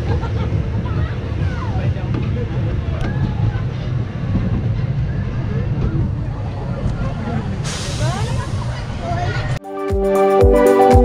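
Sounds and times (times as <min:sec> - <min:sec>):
roller coaster rumbling on track: 0:00.0 - 0:09.6
wind buffeting microphone: 0:00.0 - 0:09.6.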